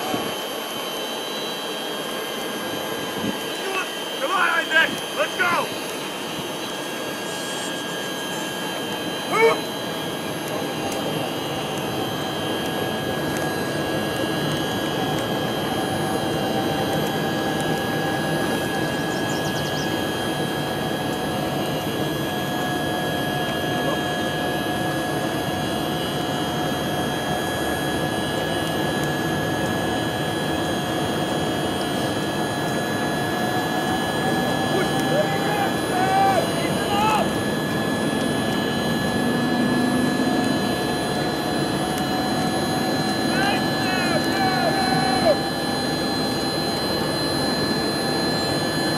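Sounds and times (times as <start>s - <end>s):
constant whine: 0.0s - 48.9s
engine drone: 0.0s - 48.9s.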